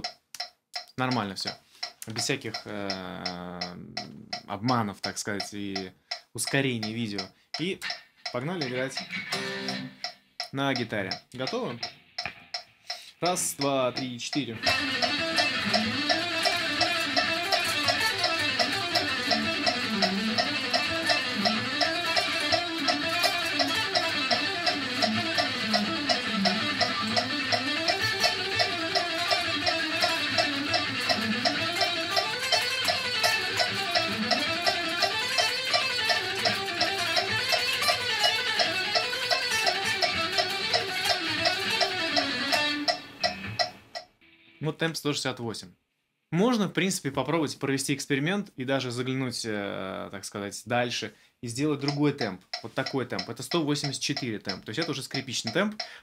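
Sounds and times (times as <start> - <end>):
metronome ticking: 0.0 - 45.7, 46.4 - 56.0
fast electric guitar notes: 13.2 - 44.7.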